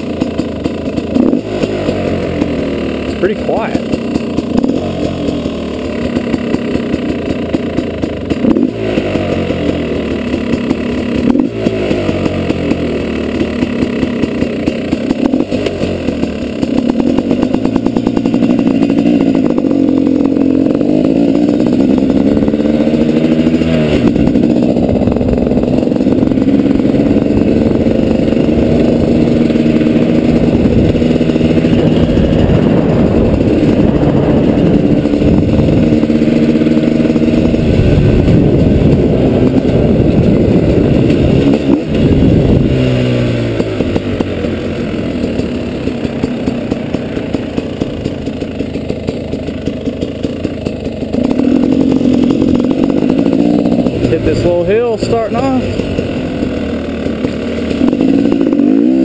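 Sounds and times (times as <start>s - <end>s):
two-stroke engine revving: 0.0s - 59.0s.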